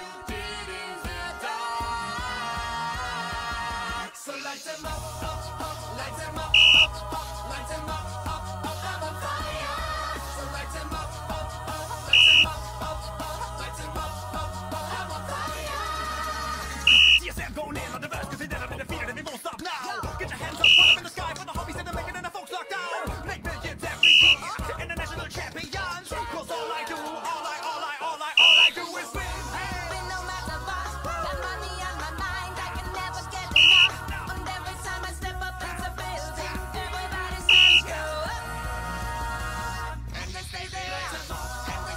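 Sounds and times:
pop music with singing: 0.0s - 41.9s
referee's whistle blast: 6.6s - 6.9s, 12.2s - 12.5s, 16.9s - 17.3s, 20.6s - 21.0s, 24.0s - 24.4s, 28.4s - 28.8s, 33.6s - 34.0s, 37.5s - 37.9s.

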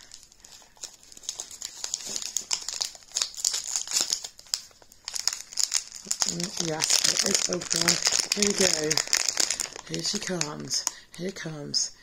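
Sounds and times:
foil wrapper crinkling: 0.0s - 11.4s.

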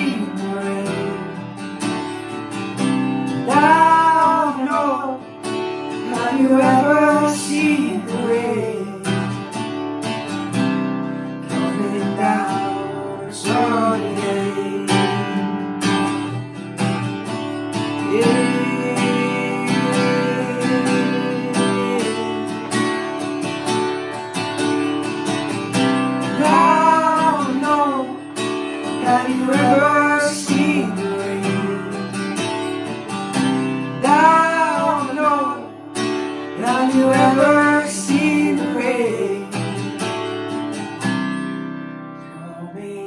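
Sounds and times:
person singing: 0.0s - 1.6s, 3.3s - 5.4s, 6.0s - 9.4s, 11.5s - 15.7s, 18.0s - 23.0s, 26.3s - 32.2s, 34.0s - 35.8s, 36.4s - 39.9s, 42.3s - 43.0s
acoustic guitar strumming: 0.0s - 43.0s.

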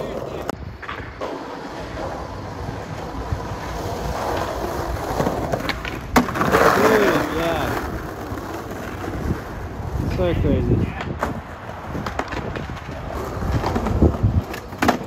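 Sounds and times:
skateboard clack: 0.0s - 15.0s
skateboard wheels rolling on asphalt: 0.0s - 15.0s.

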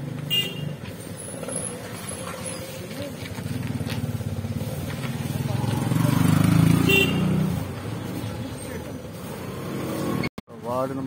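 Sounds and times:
street traffic: 0.0s - 11.0s
motor scooter passing: 1.1s - 10.3s
small car passing: 1.1s - 10.3s.

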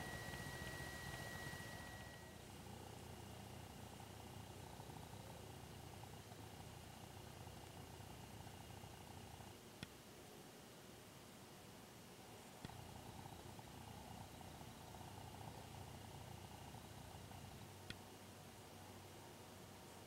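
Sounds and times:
faint low hum and hiss: 0.0s - 20.0s.

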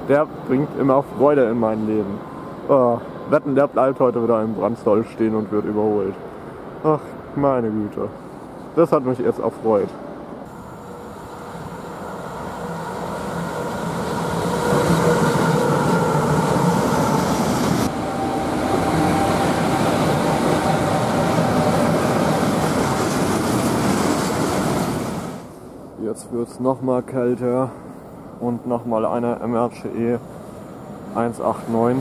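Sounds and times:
faint steady whine: 0.0s - 16.8s
train wheels rumbling on rails: 9.9s - 25.6s.

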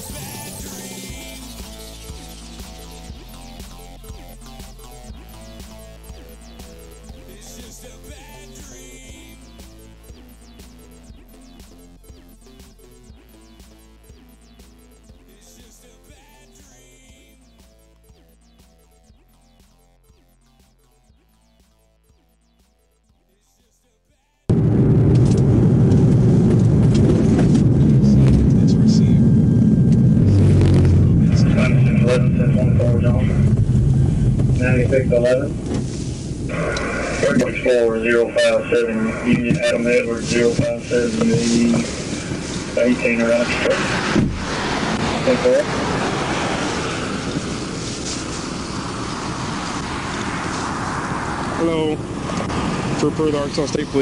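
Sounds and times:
car road and engine rumble: 24.5s - 54.0s
highway traffic roar: 24.5s - 54.0s.

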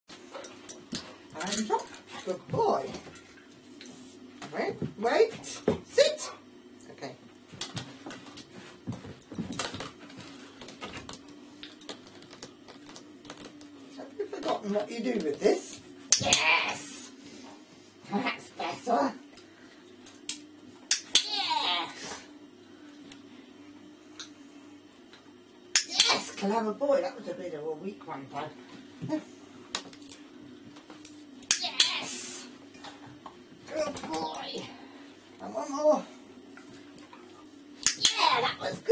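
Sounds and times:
faint steady hum: 0.1s - 38.9s.

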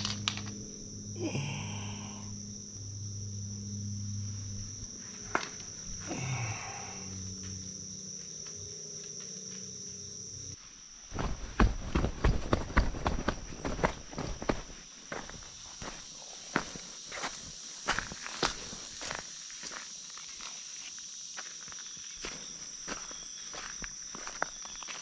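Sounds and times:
crickets trilling: 0.0s - 25.0s
footsteps on dirt and pebbles: 11.1s - 25.0s.

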